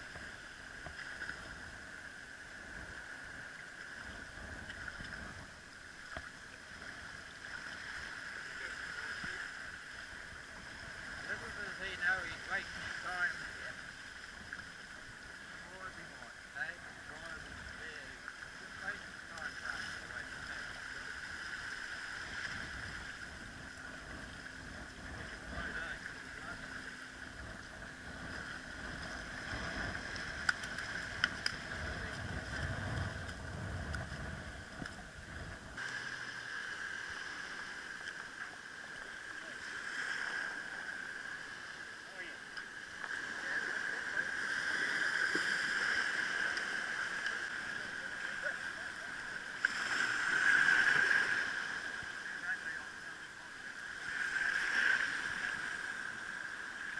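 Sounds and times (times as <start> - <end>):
wind rumble on microphone: 0.0 - 38.2
water washing in shallows: 0.0 - 56.9.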